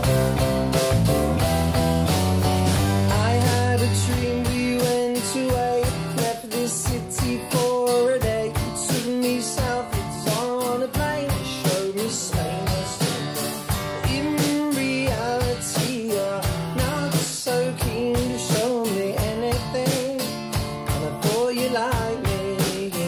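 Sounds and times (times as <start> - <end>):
steady beat: 0.0 - 23.0
strummed acoustic guitars: 0.0 - 23.0
man singing: 2.9 - 23.0.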